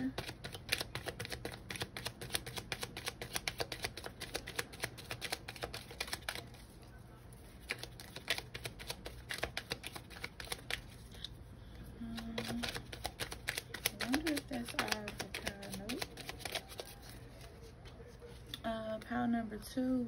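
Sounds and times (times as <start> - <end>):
cards being shuffled: 0.0 - 6.8, 7.4 - 11.4, 12.0 - 18.5.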